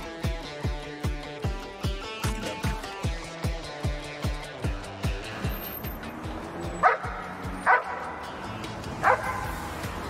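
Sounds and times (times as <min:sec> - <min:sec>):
music with thumping beat: 0:00.0 - 0:10.0
dog barking: 0:06.8 - 0:08.1, 0:09.0 - 0:09.5.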